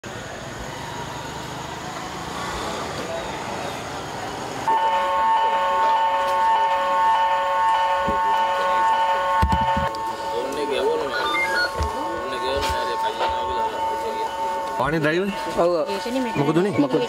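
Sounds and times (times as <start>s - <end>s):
background noise: 0.0s - 17.0s
loud held multi-tone chord: 11.9s - 16.6s.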